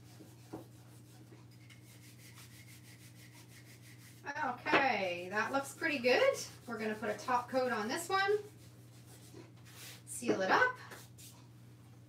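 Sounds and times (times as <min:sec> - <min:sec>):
fingertips rubbing paper: 0:00.0 - 0:04.2.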